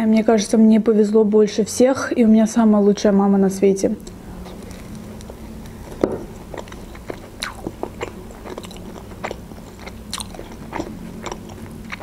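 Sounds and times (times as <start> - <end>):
person biting and chewing: 4.5 - 12.0.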